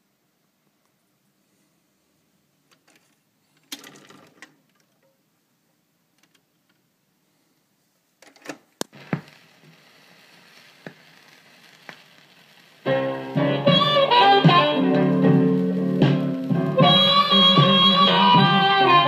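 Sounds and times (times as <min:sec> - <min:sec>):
vinyl surface hiss and ticks: 0:08.2 - 0:19.0
stylus landing on record: 0:08.8 - 0:09.5
blues band with piano: 0:12.8 - 0:19.0.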